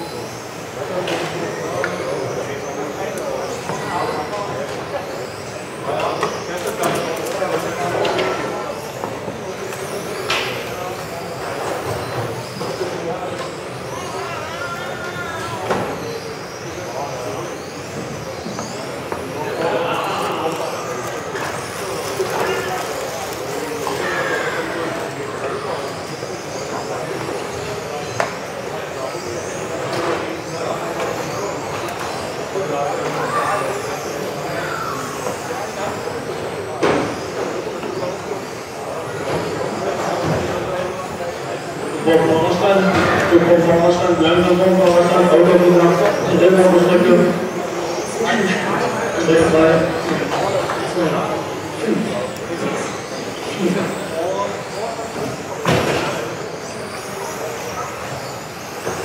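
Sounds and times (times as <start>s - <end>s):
rc car motors whining: 0.0s - 59.0s
voices in a hall: 0.0s - 59.0s.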